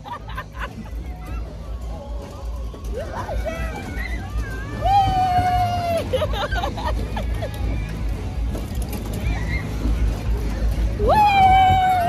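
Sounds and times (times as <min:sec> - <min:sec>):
people laughing: 0:00.0 - 0:01.5, 0:05.3 - 0:07.8
excited voices: 0:00.0 - 0:08.1, 0:10.9 - 0:12.0
ride rumbling: 0:00.0 - 0:12.0.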